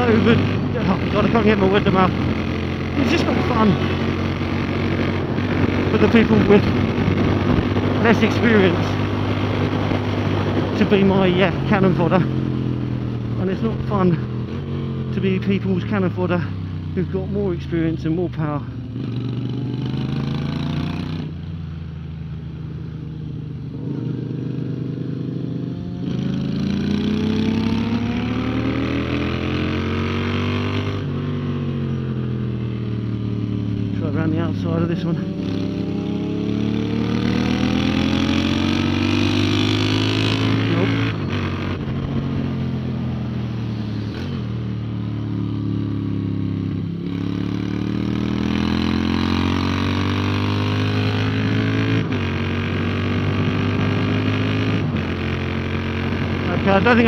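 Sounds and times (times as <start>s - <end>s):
motorcycle engine accelerating: 0.0s - 57.0s
wind noise on microphone: 3.9s - 11.7s.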